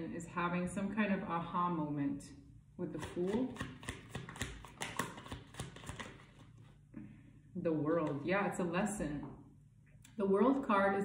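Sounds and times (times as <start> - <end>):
cards being shuffled: 3.5 - 6.8.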